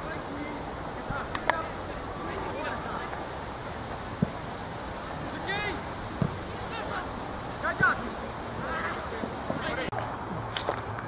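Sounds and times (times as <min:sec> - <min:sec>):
players shouting: 0:00.0 - 0:10.0
football being kicked: 0:06.2 - 0:06.4.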